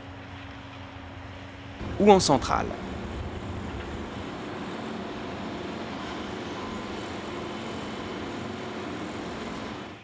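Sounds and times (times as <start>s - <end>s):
heavy machine engine drone: 0.0s - 10.0s
held hum: 1.7s - 10.0s.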